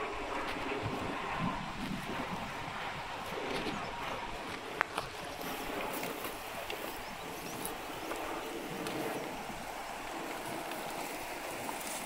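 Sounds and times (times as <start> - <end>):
cattle wading through river: 0.0 - 12.0
wind: 0.0 - 12.0
running water: 5.0 - 12.0.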